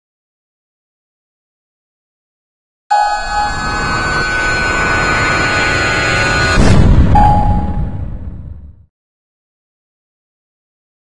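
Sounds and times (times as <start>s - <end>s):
high steady tones: 2.9s - 6.6s, 7.2s - 8.0s
rumbling intro sound effect: 3.1s - 8.9s.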